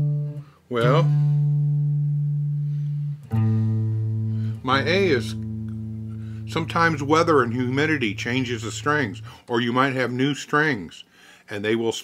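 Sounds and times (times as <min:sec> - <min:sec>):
electric guitar note ringing: 0:00.0 - 0:09.4.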